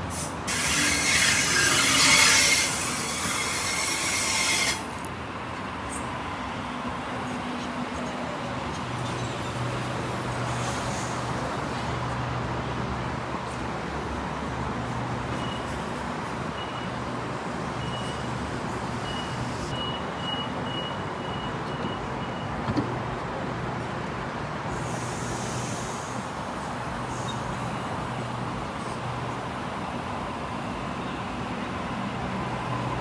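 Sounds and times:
high door-warning beeps: 16.5s - 17.0s, 17.8s - 18.3s, 19.0s - 22.7s
air hiss: 24.7s - 27.5s.

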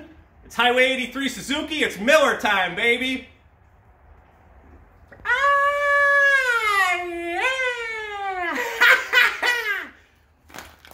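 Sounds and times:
man's long high vocal cry: 5.2s - 8.8s
man laughing: 6.9s - 10.1s.

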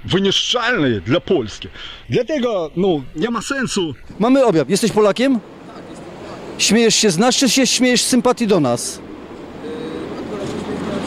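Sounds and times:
passing vehicle engine and tyres: 5.4s - 11.0s.

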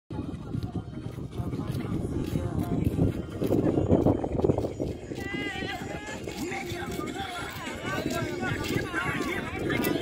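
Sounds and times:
people talking and calling out: 0.1s - 10.0s.

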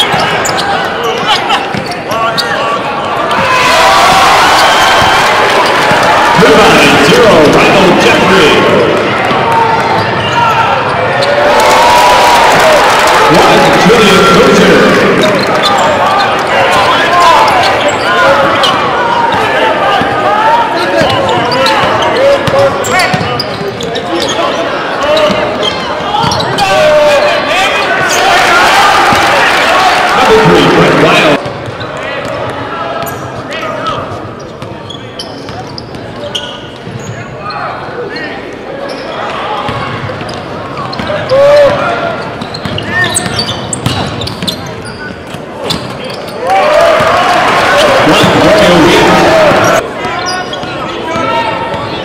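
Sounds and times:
sneakers squeaking: 0.0s - 3.7s, 8.9s - 11.6s, 14.6s - 28.4s, 31.3s - 52.0s
crowd voices and shouts: 0.0s - 52.0s.

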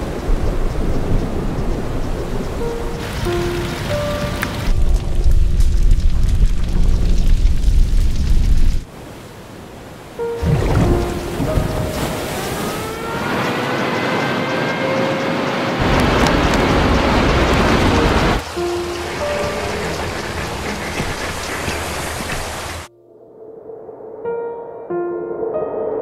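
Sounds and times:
thunder: 0.0s - 8.9s, 10.4s - 13.2s, 15.8s - 21.4s
heavy rain: 0.0s - 22.9s
wind: 0.0s - 26.0s
dramatic music: 2.6s - 7.2s, 10.2s - 15.2s, 15.8s - 22.8s.

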